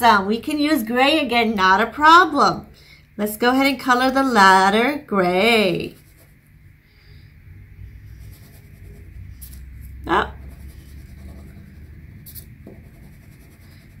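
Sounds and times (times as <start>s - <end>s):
crayon rubbing on paper: 8.1s - 14.0s.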